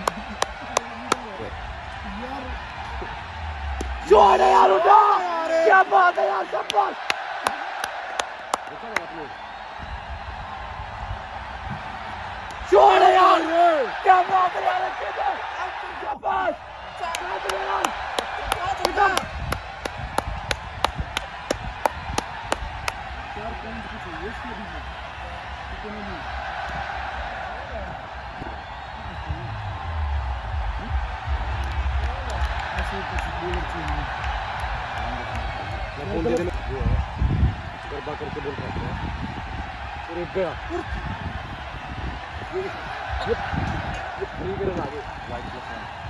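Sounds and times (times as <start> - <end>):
players calling out: 0.0 - 9.8, 11.2 - 36.7
low rumbling: 1.2 - 4.3, 28.8 - 37.7.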